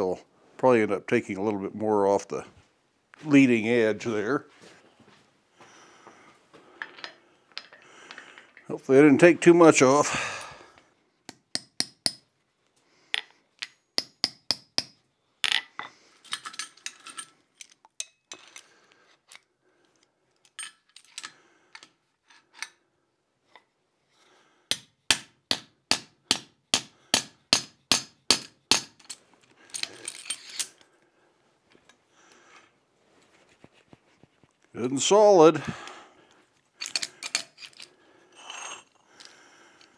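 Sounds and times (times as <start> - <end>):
metal-on-metal taps and clinks: 11.3 - 12.3, 13.1 - 18.2.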